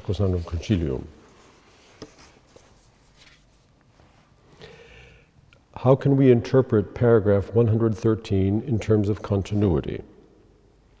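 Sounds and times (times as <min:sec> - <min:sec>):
paper shuffling: 0:00.0 - 0:04.2.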